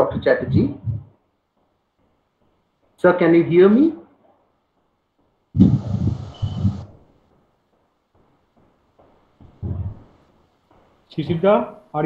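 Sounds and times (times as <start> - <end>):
burst of rough loud noise: 5.6 - 6.9.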